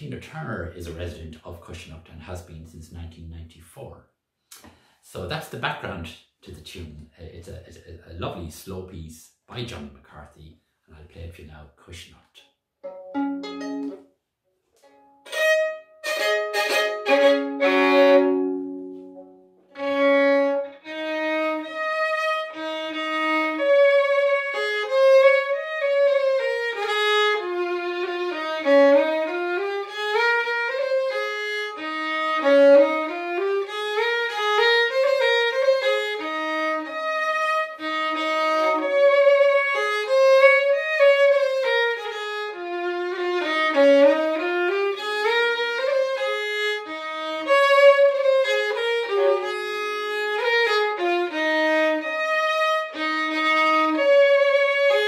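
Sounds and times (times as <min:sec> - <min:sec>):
solo fiddle slow melody: 0:12.8 - 0:14.2, 0:14.8 - 0:55.0.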